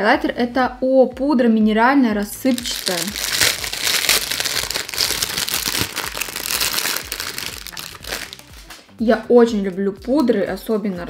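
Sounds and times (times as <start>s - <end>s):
crinkly packaging crackling: 2.4s - 8.8s.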